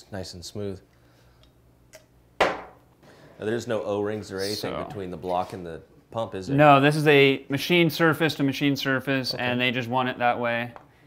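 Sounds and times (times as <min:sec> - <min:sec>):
sharp knock: 0:02.4 - 0:02.8.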